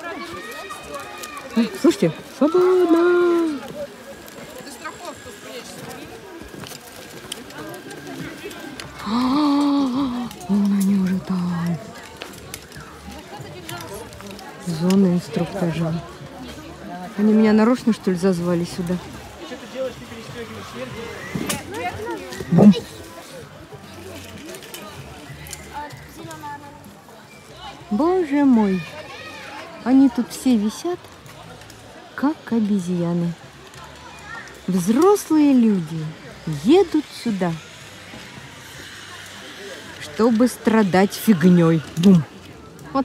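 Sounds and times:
distant people talking and calling: 0:00.0 - 0:43.0.

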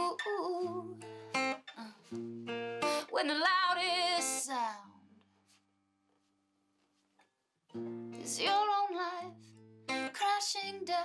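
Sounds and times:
woman singing: 0:00.0 - 0:02.2, 0:02.8 - 0:05.0, 0:08.2 - 0:11.0
acoustic guitar strumming: 0:00.0 - 0:03.1.

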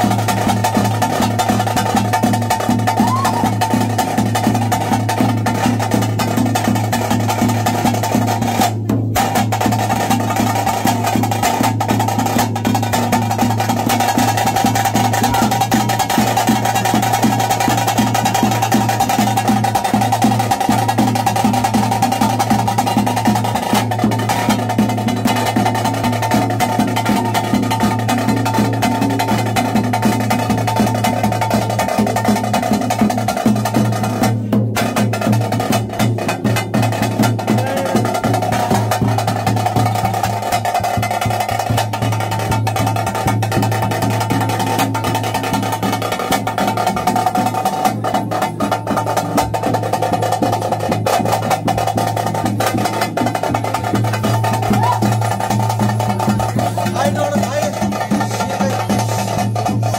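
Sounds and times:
temple drums rolling: 0:00.0 - 0:59.9.

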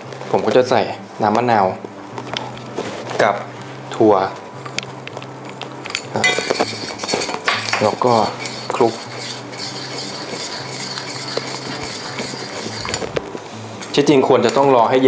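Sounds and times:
spoon tapping steel bowl: 0:05.9 - 0:13.1
spoon scraping frying pan: 0:05.9 - 0:14.0.

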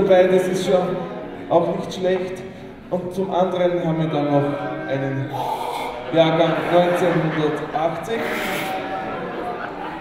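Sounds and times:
audience chattering: 0:00.0 - 0:10.0
audience laughing: 0:06.0 - 0:10.0.

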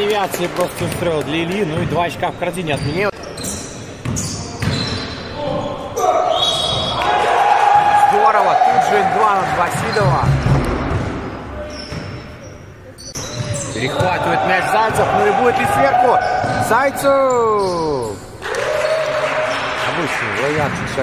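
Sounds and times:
players' voices: 0:00.0 - 0:21.0
shoe squeaks: 0:02.2 - 0:05.4, 0:06.3 - 0:07.0, 0:11.5 - 0:14.0, 0:15.8 - 0:18.4
basketball bouncing on hardwood floor: 0:10.2 - 0:12.2.

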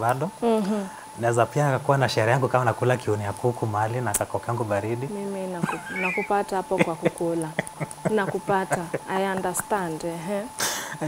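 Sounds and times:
man talking: 0:06.8 - 0:09.0.

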